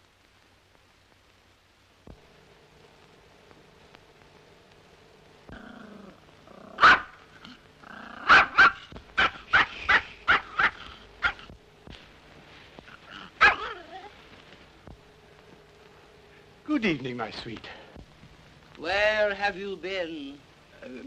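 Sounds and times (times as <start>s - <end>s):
faint film soundtrack hum: 0.0s - 21.0s
dog barking: 6.8s - 7.2s, 8.2s - 11.5s, 13.1s - 14.0s.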